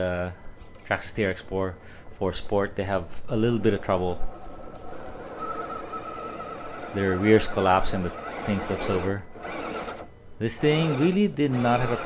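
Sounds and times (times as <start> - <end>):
electric motor whining: 3.5 - 12.0.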